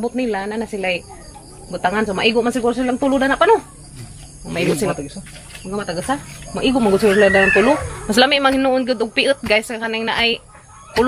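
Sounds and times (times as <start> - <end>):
rooster crowing: 6.5 - 8.3, 10.2 - 11.0.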